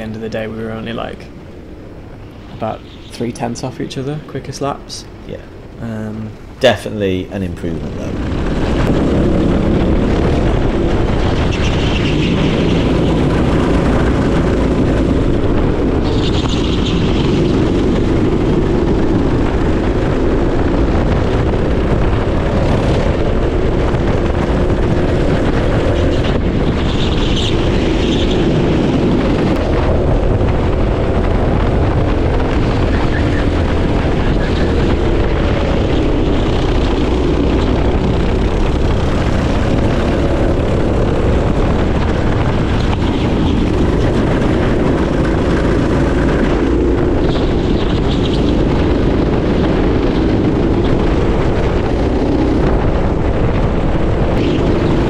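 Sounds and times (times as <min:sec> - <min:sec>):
wind noise on microphone: 0:00.0 - 0:55.0
go-kart engine running hard: 0:08.2 - 0:55.0.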